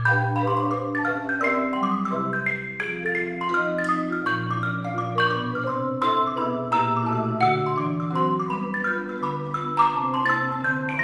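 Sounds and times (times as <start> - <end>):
marimba accompaniment: 0.0 - 11.0
xylophone ragtime melody: 0.0 - 11.0.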